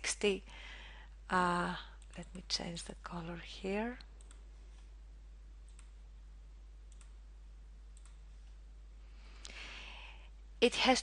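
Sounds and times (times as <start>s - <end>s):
steady low hum: 0.0s - 11.0s
computer mouse clicks: 2.0s - 2.5s, 4.2s - 4.9s, 5.6s - 6.0s, 6.9s - 7.2s, 7.9s - 8.2s.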